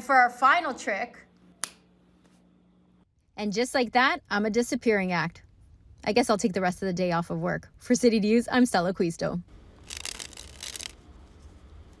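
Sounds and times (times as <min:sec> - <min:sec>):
playing cards riffling: 0:09.8 - 0:12.0.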